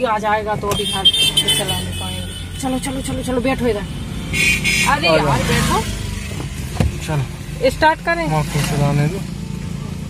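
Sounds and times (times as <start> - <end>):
car engine humming: 0.0 - 10.0.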